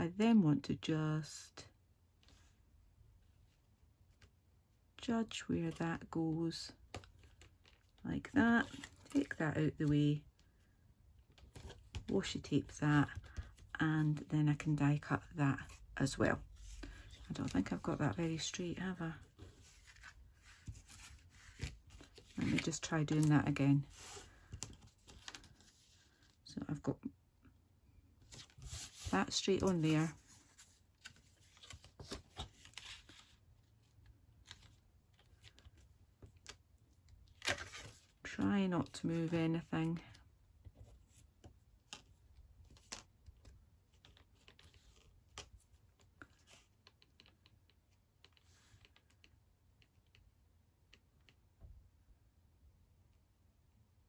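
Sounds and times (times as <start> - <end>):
paper rustling: 16.5 - 26.2, 28.3 - 33.4
paper rustle: 28.3 - 33.4.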